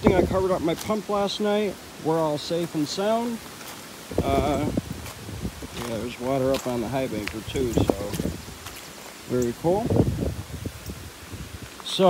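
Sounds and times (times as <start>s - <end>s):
footsteps on gravel and grass: 0.0s - 12.0s.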